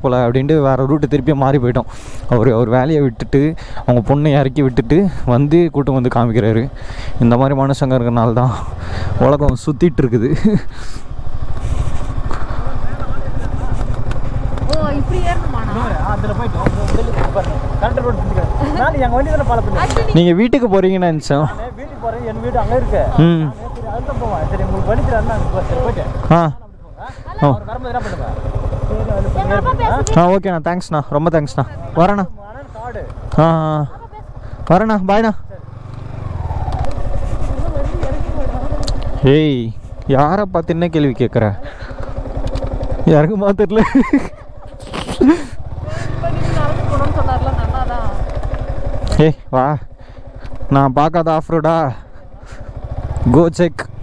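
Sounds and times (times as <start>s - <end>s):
motorcycle engine low revs: 6.7s - 20.1s, 32.6s - 39.2s, 39.8s - 50.7s, 52.0s - 54.0s.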